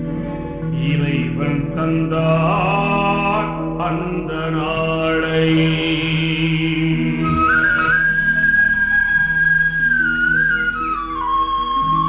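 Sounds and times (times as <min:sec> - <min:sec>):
person singing: 0:00.7 - 0:09.2.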